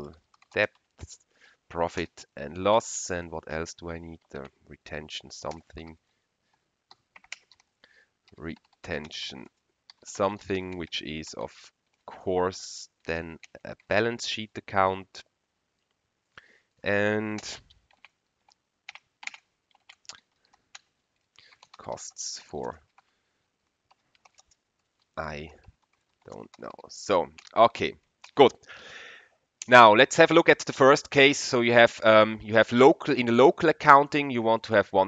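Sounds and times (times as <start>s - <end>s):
keyboard keystrokes typing: 0.2s - 0.9s, 6.9s - 7.7s, 8.3s - 10.9s, 17.2s - 22.0s, 23.9s - 28.6s.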